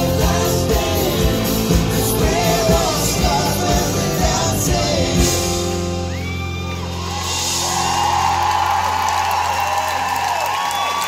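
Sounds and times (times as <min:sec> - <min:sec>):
rock band holding a chord: 0:00.0 - 0:06.2
arena crowd cheering and screaming: 0:05.5 - 0:11.0.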